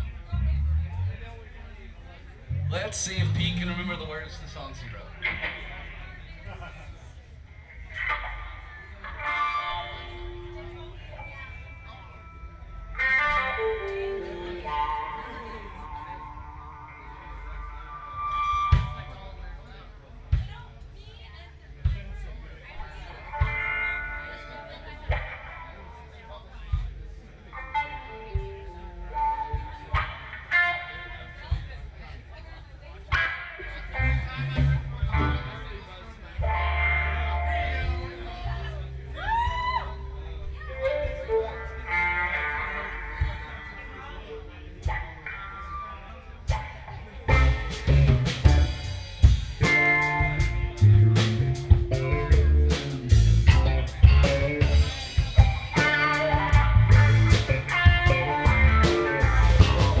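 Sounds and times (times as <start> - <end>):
electric guitars and bass: 0.0 - 21.2, 22.1 - 60.0
drum kit beat: 2.5 - 4.1, 46.5 - 60.0.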